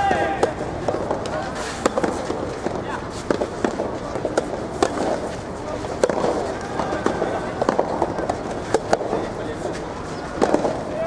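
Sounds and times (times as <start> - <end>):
distant tennis hits: 0.0 - 11.0
rackets hitting tennis balls: 0.0 - 11.0.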